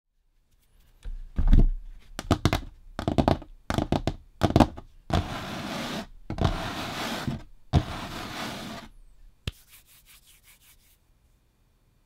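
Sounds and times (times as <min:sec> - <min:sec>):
fingernails tapping on a tabletop: 0:02.2 - 0:05.4
hands rubbing and scratching a surface: 0:05.1 - 0:08.9, 0:09.5 - 0:11.1.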